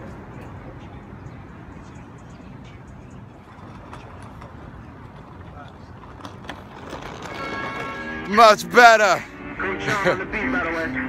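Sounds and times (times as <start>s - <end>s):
urban background rumble: 0.0s - 11.0s.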